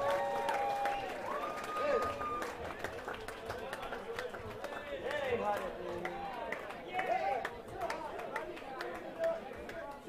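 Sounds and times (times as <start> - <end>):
bar crowd chatter: 0.0 - 10.0.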